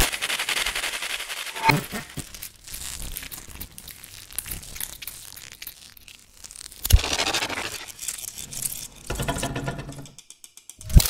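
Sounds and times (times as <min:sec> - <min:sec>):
crackling electronic noise music: 0:01.5 - 0:08.4.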